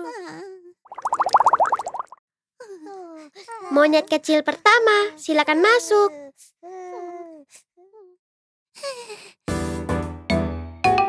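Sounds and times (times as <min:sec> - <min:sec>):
cartoon bubble burble: 0:00.9 - 0:02.2.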